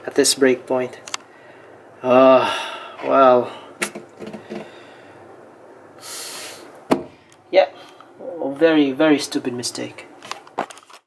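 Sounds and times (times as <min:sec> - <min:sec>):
person sighing: 0:02.0 - 0:03.8.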